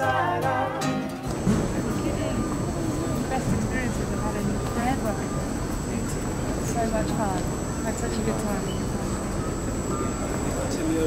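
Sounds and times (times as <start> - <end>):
indistinct voices: 0.0 - 11.0
high-pitched whine: 1.2 - 11.0.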